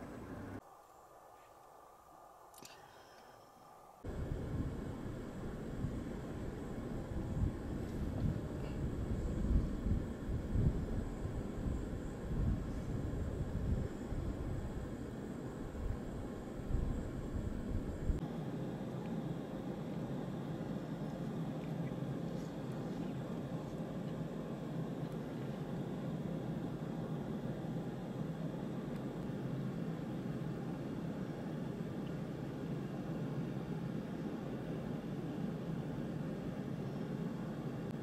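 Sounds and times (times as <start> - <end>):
wind on microphone: 4.1 - 18.2.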